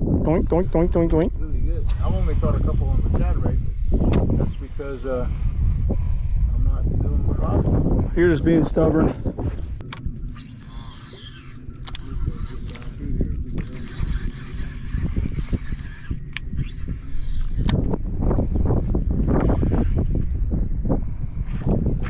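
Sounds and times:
wind and water rumble: 0.0s - 22.0s
fishing reel whirring: 9.9s - 18.0s.

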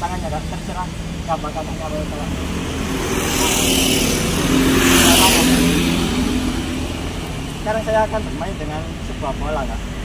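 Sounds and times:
low traffic rumble: 0.0s - 10.0s
vehicle passing close by: 0.9s - 9.1s.

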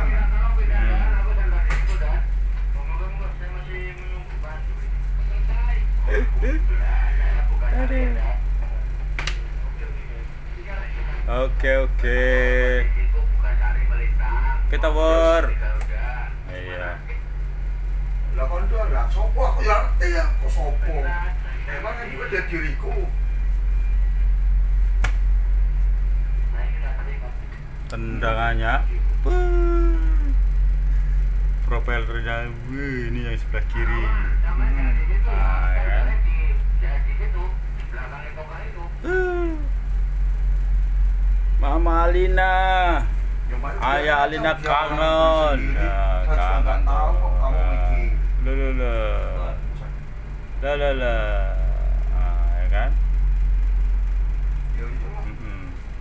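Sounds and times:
boat engine drone: 0.0s - 56.0s
sharp click: 9.2s - 9.4s
faint voices: 28.8s - 30.6s, 34.0s - 39.8s.

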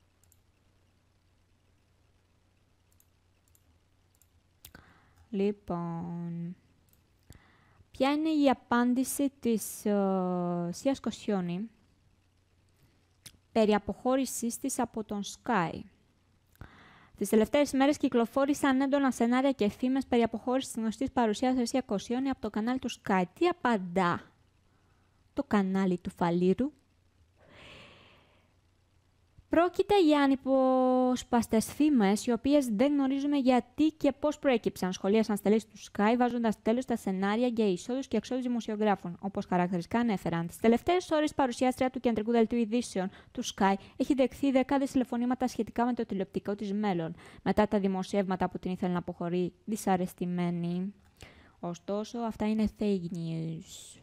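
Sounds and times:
low room hum: 0.0s - 54.0s
computer mouse clicks: 0.1s - 0.7s, 2.8s - 5.3s, 6.8s - 7.4s
woman breathing softly: 4.7s - 5.3s, 7.3s - 7.9s, 16.6s - 17.2s, 27.4s - 28.6s, 47.2s - 47.4s, 51.2s - 51.6s
woman speaking: 5.3s - 6.6s, 8.0s - 11.8s, 13.5s - 15.9s, 17.2s - 24.4s, 25.4s - 26.8s, 29.5s - 51.0s, 51.6s - 54.0s.

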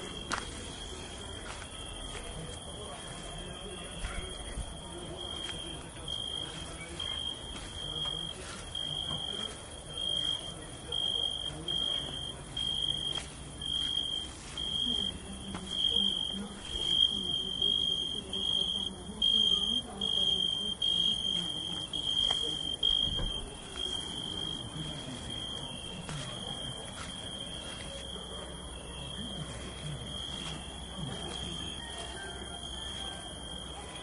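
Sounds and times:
faint low background murmur: 0.0s - 34.0s
cricket chirping: 1.4s - 34.0s.

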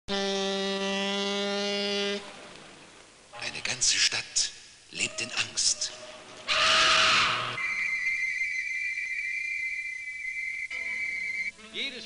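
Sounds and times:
ship's horn blast: 0.1s - 2.3s.

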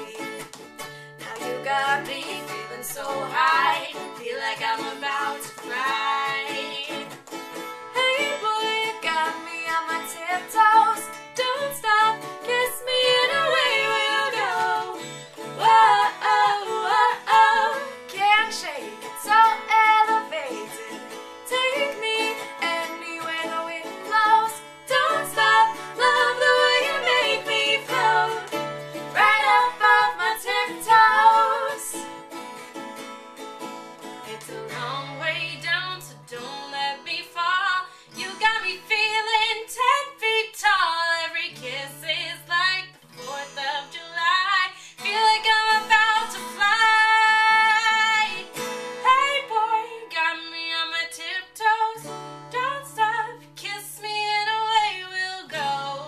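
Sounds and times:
two women singing: 0.0s - 7.2s, 7.9s - 32.2s, 34.2s - 56.0s
acoustic guitar: 0.0s - 56.0s
ukulele: 0.0s - 56.0s.

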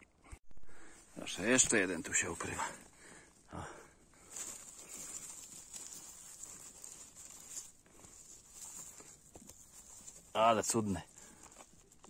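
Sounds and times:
dry leaves rustling and crackling: 1.0s - 12.0s.

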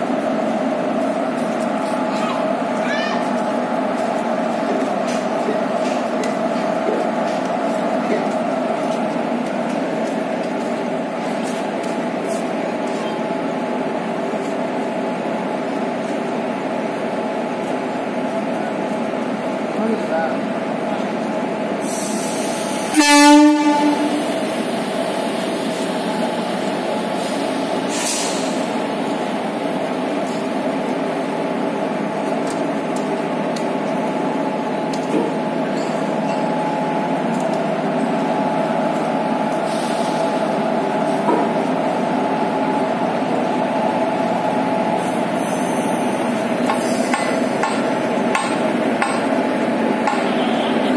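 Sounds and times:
electric locomotive humming: 0.0s - 50.9s
locomotive horn blast: 22.9s - 24.3s, 50.2s - 50.9s
brief hisses: 27.2s - 28.6s.

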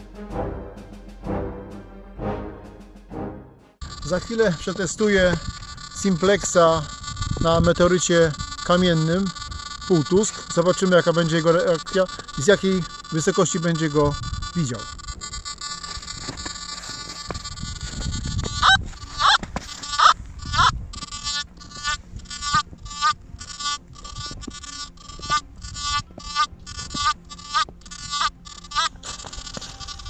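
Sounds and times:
metal detector beeping: 3.8s - 30.0s.

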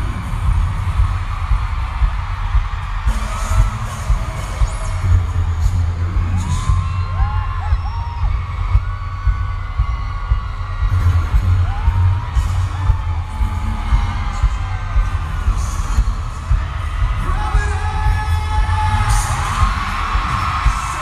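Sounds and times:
deep pulsing bass throb: 0.0s - 21.0s
fans screaming and whooping: 0.0s - 21.0s.

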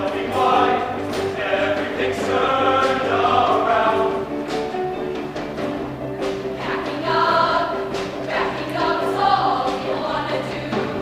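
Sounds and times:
choir singing: 0.0s - 4.5s, 6.6s - 11.0s
instrumental backing: 0.0s - 11.0s
percussion hits: 0.0s - 11.0s.

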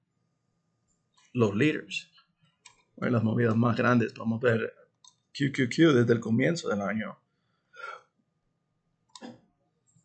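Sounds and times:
man speaking: 1.4s - 2.0s, 3.0s - 4.7s, 5.4s - 7.1s.

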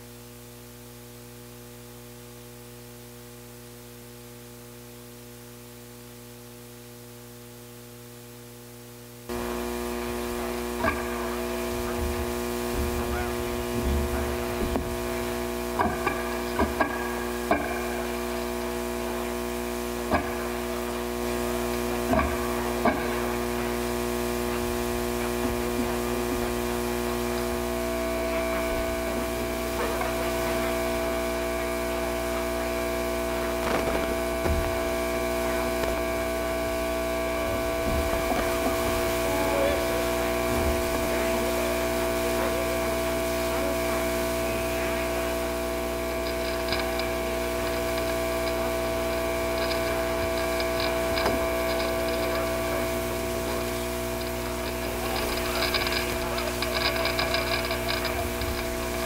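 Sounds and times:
mains hum: 0.0s - 59.0s
electronic drone of held tones: 9.3s - 59.0s
clicks and pops: 33.5s - 36.2s.

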